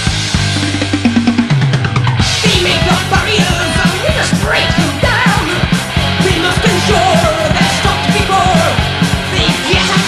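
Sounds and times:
driving drum beat: 0.0s - 10.0s
heavy metal band playing: 0.0s - 10.0s.

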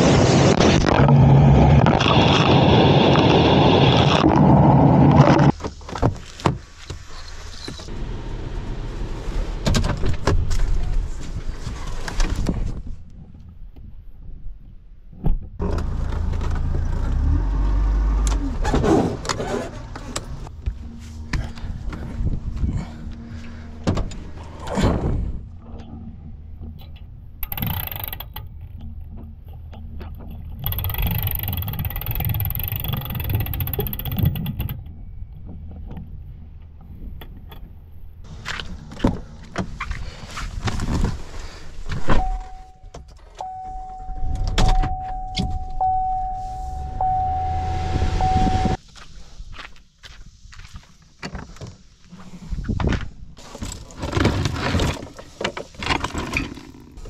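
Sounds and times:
low rumble: 20.4s - 27.4s, 43.6s - 48.8s
electronic chime: 42.2s - 48.8s
clatter and knocks around trailer: 52.8s - 57.0s.

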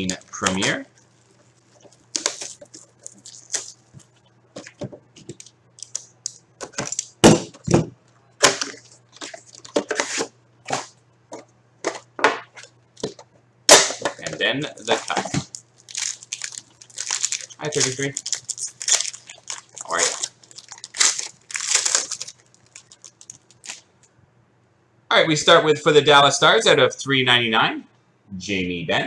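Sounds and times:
low steady hum: 0.0s - 29.0s
cardboard box crackling and snapping: 15.0s - 23.8s.

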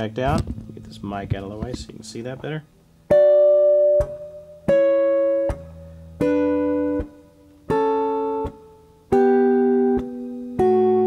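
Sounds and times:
clean electric guitar dyads: 0.0s - 11.0s.

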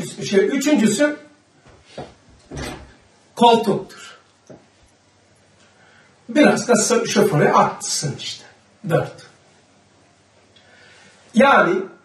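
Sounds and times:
man talking: 0.0s - 1.4s, 3.4s - 4.2s, 6.3s - 9.4s, 11.3s - 12.0s.

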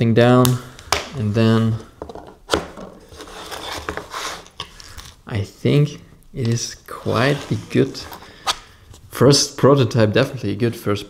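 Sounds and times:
card sliding and rubbing: 3.0s - 5.2s, 6.9s - 9.0s.

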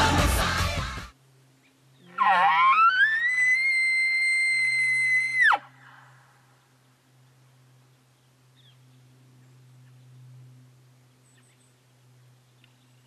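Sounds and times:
rock song with singing: 0.0s - 1.1s
elk call through bugle tube: 2.1s - 3.8s.

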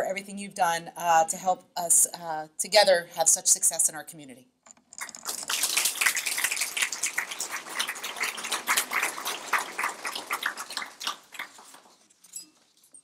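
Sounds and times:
audience applauding: 5.0s - 12.0s.

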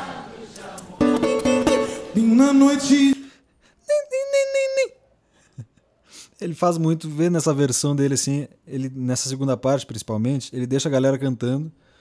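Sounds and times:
man singing high note: 1.9s - 3.3s.

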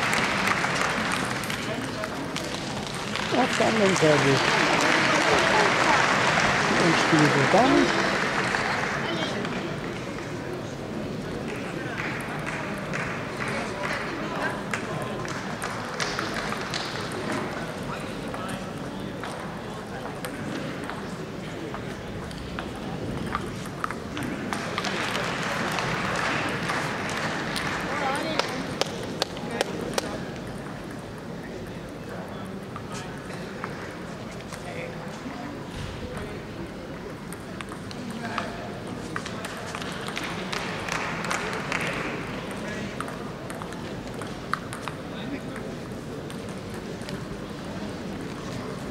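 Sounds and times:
murmur of voices echoing: 0.0s - 48.9s
table tennis balls clicking: 18.3s - 33.7s, 37.2s - 47.4s.

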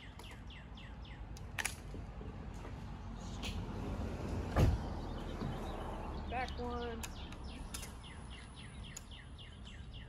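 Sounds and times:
low outdoor background: 0.0s - 10.0s
dull thump: 4.5s - 4.9s.

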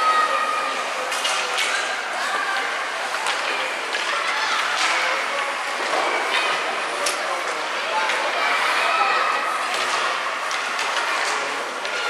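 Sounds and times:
arena hubbub: 0.0s - 12.0s
hockey sticks and puck clicking: 1.1s - 1.9s, 2.5s - 5.5s, 9.7s - 12.0s.

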